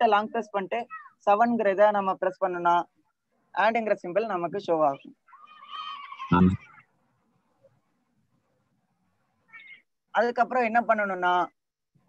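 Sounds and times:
honking synthetic voice: 6.3 - 6.6.

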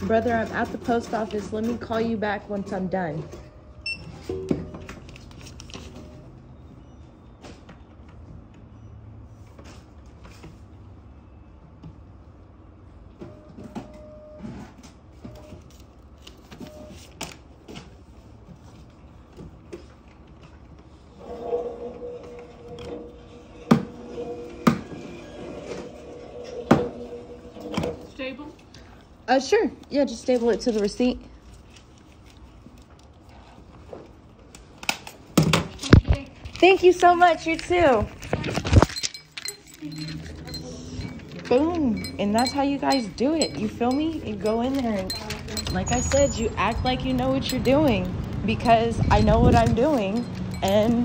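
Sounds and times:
items handled on a counter: 0.0 - 8.7, 11.6 - 51.0.

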